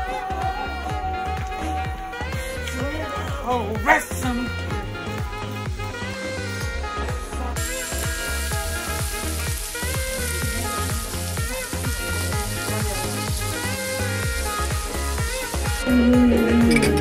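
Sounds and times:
background music with steady beat: 0.0s - 17.0s
food sizzling in a pan: 3.8s - 17.0s.

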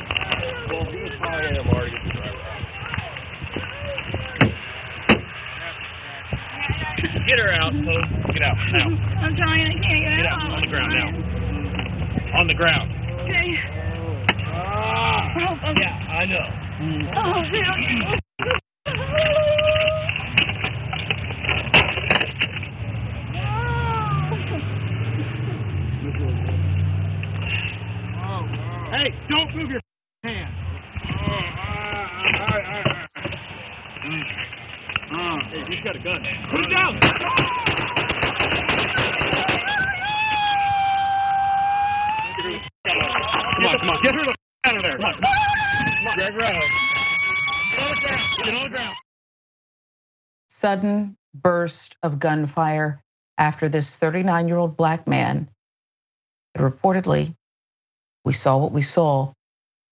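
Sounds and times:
noisy muffled recording noise: 0.0s - 27.2s, 28.0s - 40.2s
vehicle and road noise: 0.0s - 49.0s
officers shouting: 23.2s - 25.5s, 35.1s - 49.0s.

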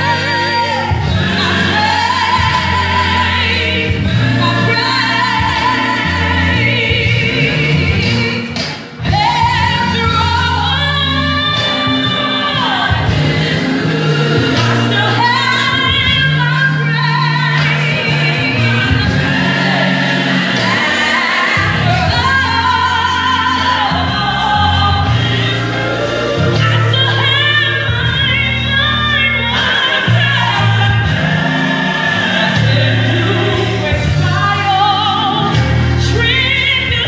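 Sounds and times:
sustained bass notes: 0.0s - 37.0s
woman singing with vibrato: 0.0s - 37.0s.

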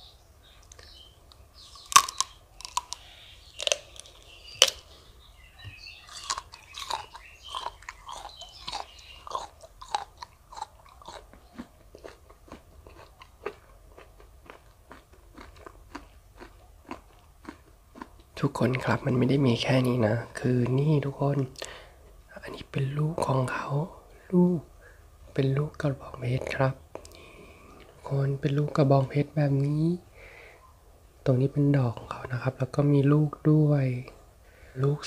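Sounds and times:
chewing: 0.6s - 5.0s, 5.6s - 18.9s
crunching bites of cactus: 0.7s - 5.0s, 5.7s - 18.9s.

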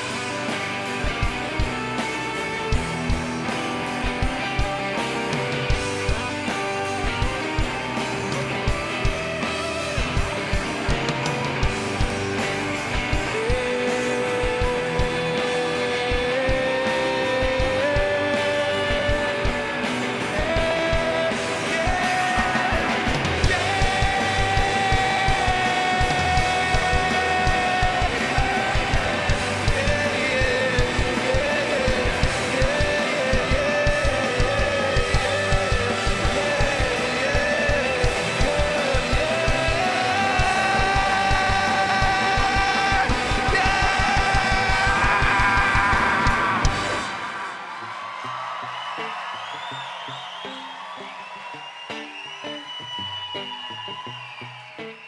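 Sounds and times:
drum kit beat: 0.0s - 47.7s
electric guitar: 0.0s - 55.0s
long held lead guitar notes: 0.0s - 55.0s.

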